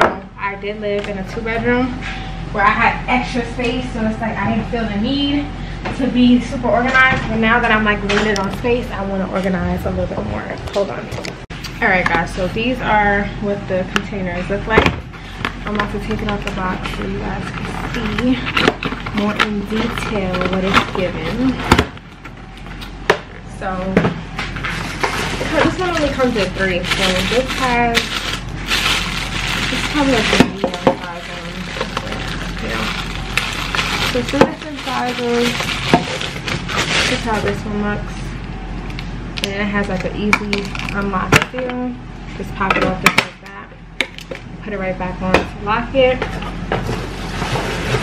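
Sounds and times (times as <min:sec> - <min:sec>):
plastic containers rustling: 0:15.2 - 0:22.9, 0:24.4 - 0:37.7.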